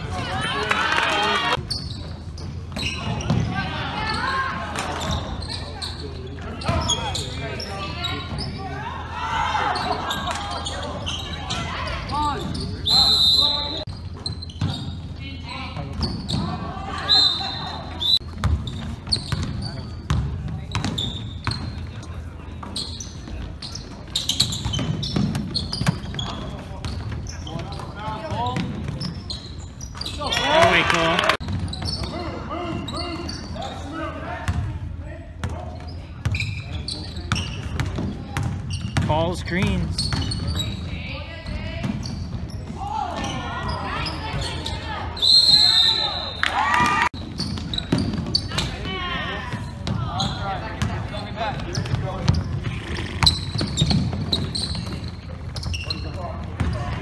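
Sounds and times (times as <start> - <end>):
sneaker squeaks: 1.4 - 34.7, 35.4 - 57.0.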